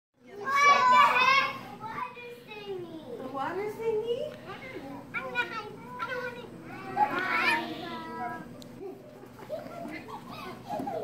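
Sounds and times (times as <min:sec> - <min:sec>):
children chattering: 0:00.2 - 0:03.3, 0:04.4 - 0:11.0
children calling out together: 0:04.6 - 0:08.5.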